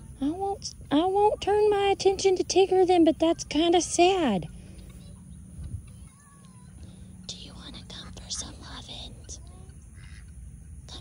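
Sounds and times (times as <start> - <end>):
low wind rumble on microphone: 0.0 - 6.2
faint bird chirps: 4.4 - 11.0.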